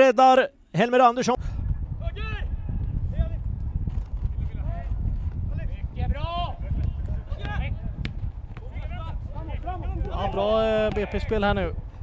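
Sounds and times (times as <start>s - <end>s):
steady low rumble: 1.4s - 10.2s.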